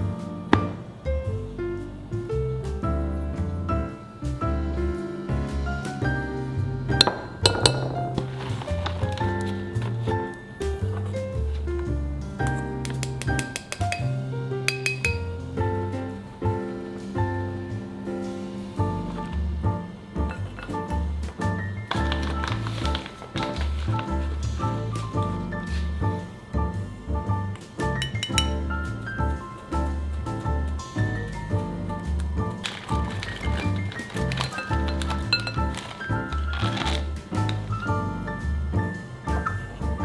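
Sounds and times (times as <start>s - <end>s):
background music with bass and piano: 0.0s - 40.0s
metal cup clinking on glass bowl: 7.0s - 7.9s, 14.7s - 15.2s, 28.0s - 28.6s, 33.1s - 35.9s.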